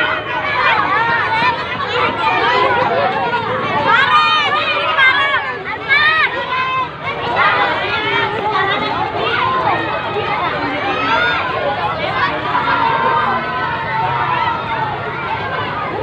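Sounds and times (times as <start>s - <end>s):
children shouting: 0.0s - 16.0s.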